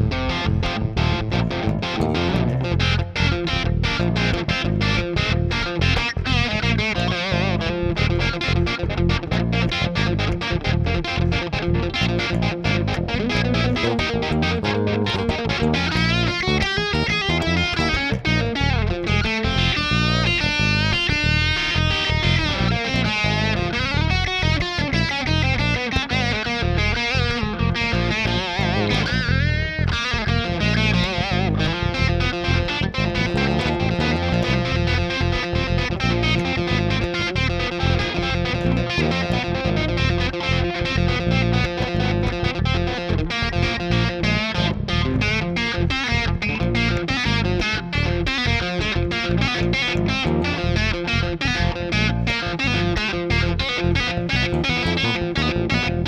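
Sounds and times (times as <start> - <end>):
bass guitar: 0.0 - 56.0
electric guitar lead line: 0.0 - 56.0.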